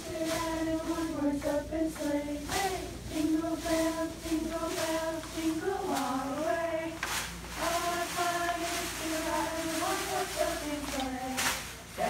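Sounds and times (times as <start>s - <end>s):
girls singing unaccompanied: 0.0s - 12.0s.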